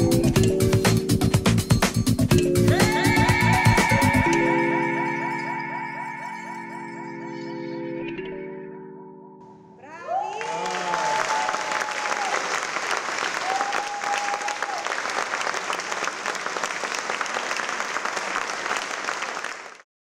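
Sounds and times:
held whoop: 0:09.8 - 0:12.5, 0:13.4 - 0:15.0
held cheer: 0:09.8 - 0:15.9
audience applauding: 0:10.3 - 0:19.8.

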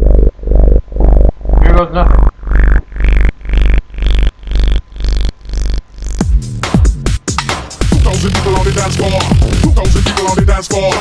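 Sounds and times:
chopped pulsing synth sound: 0:00.0 - 0:11.0
heavy bass: 0:00.0 - 0:11.0.

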